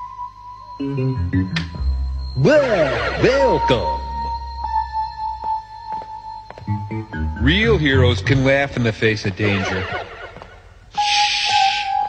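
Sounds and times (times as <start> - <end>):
cartoon background music: 0.8 - 5.9, 6.6 - 10.3, 11.0 - 12.0.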